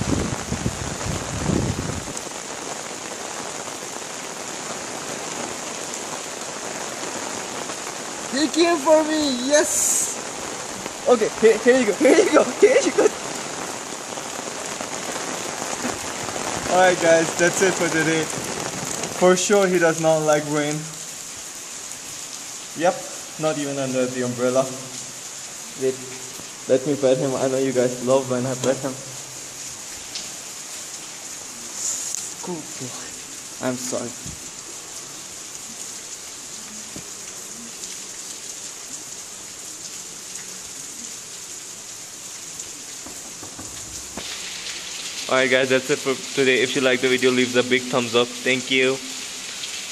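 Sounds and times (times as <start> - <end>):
rain on wet paving: 0.0 - 49.9.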